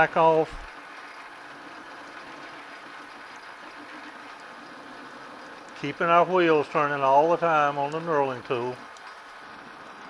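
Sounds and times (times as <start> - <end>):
knurling wheels rolling on metal: 0.0 - 10.0
metal lathe running: 0.0 - 10.0.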